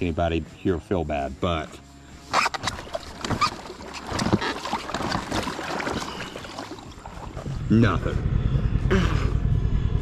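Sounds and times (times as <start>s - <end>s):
water splashing and sloshing: 2.2s - 7.8s
knocks and thuds on raft: 2.4s - 7.6s.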